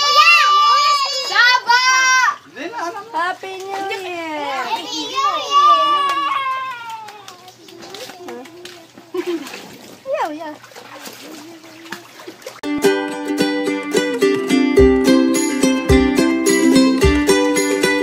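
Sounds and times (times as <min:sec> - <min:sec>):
children's voices: 0:00.0 - 0:09.4
hands splashing water: 0:05.8 - 0:12.7
plucked string music: 0:12.6 - 0:18.0.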